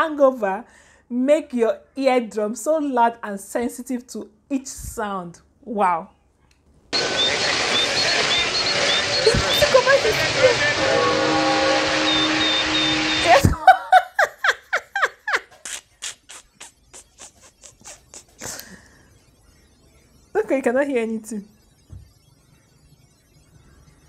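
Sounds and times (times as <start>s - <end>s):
chirping tones: 6.9s - 15.3s, 15.9s - 24.0s
loud household noise: 7.0s - 13.7s
woman laughing: 13.3s - 18.8s.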